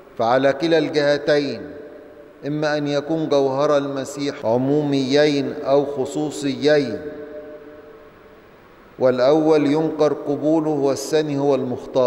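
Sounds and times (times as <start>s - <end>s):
man's voice echoing: 0.0s - 8.1s, 9.0s - 12.0s.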